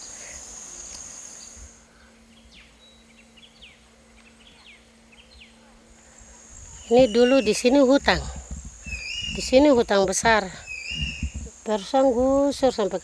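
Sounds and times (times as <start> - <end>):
insect buzzing: 0.0 - 13.0.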